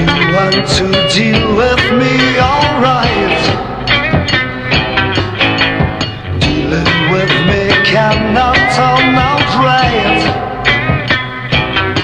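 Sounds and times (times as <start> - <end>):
rock band with electric guitar: 0.0 - 12.0.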